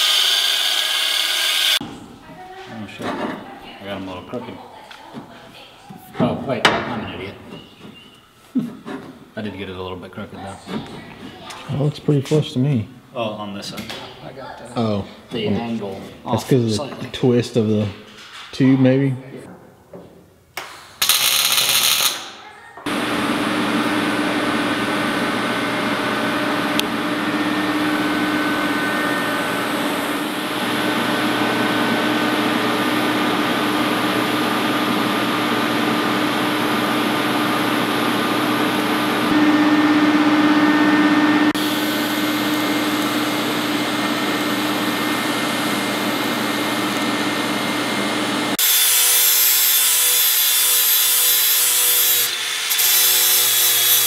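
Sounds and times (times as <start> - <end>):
angle grinder grinding steel: 0.0 - 1.8, 21.0 - 23.0, 38.9 - 54.0
power tool whirring: 0.0 - 1.8, 21.0 - 54.0.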